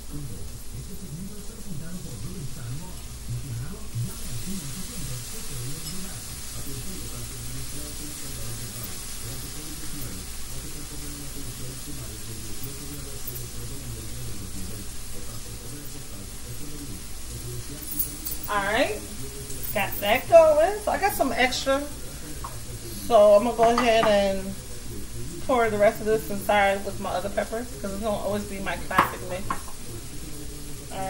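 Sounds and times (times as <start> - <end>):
food sizzling in a pan: 0.0 - 31.0
low murmur of voice: 0.0 - 31.0.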